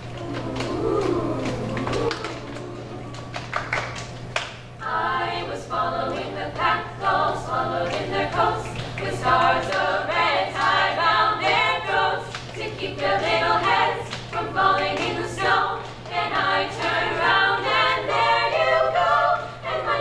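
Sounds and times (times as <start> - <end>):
hand claps: 0.2 - 4.7
female group singing in harmony: 4.8 - 20.0.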